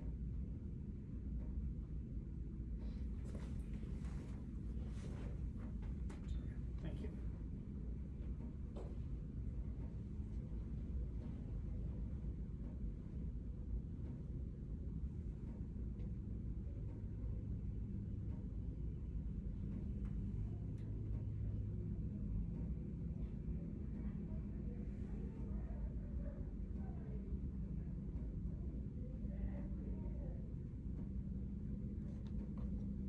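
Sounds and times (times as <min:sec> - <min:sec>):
low room hum and rumble: 0:00.0 - 0:33.0.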